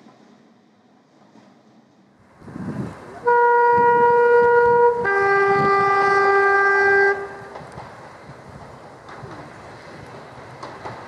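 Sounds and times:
train rumble: 0.0 - 11.0
two-tone train horn: 3.2 - 7.6.

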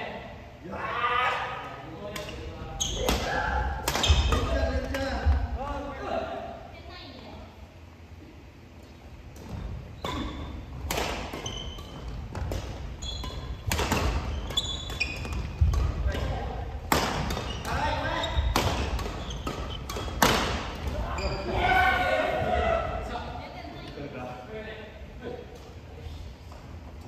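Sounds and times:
rackets hitting shuttlecocks: 3.1 - 5.0, 9.4 - 17.8, 18.4 - 21.0
sneaker squeaks on wooden floor: 4.0 - 4.3, 11.4 - 15.7, 17.3 - 20.2, 21.1 - 21.5.

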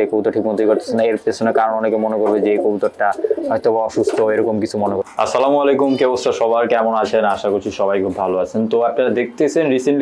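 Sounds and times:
pigeon cooing: 0.0 - 6.2.

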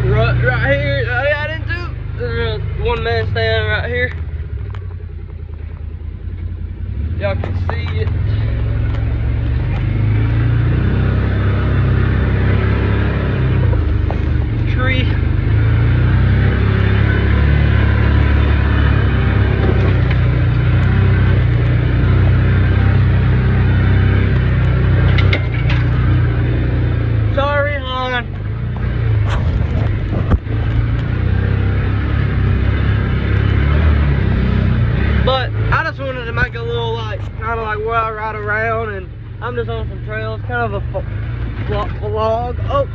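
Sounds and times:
vehicle engine rumbling: 0.0 - 42.9.

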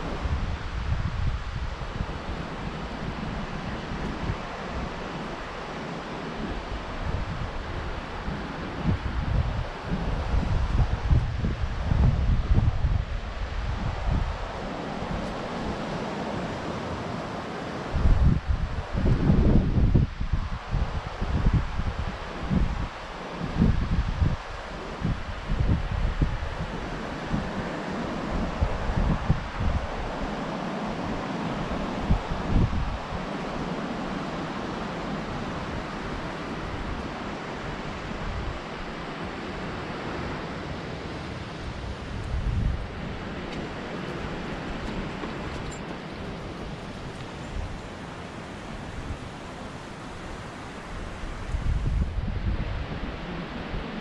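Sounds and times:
sea surf: 0.0 - 54.0
wind buffeting microphone: 0.0 - 54.0.

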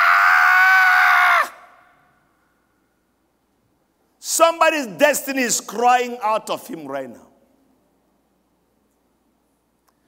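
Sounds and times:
man screaming: 0.0 - 1.9.

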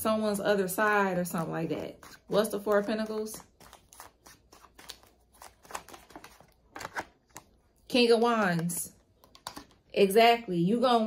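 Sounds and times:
cards being shuffled: 2.0 - 7.6.

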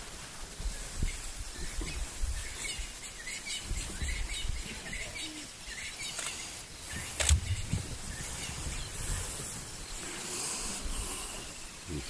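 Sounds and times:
high insect hiss: 0.0 - 12.0.

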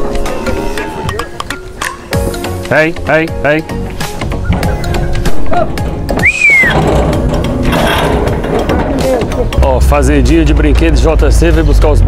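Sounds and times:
hooves clattering on metal floor: 3.9 - 9.6
whistle rising and falling: 6.2 - 6.8.

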